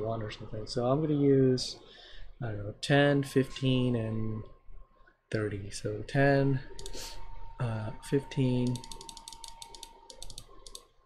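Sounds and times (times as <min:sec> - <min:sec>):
computer mouse clicking: 0:06.8 - 0:07.1, 0:08.6 - 0:10.9.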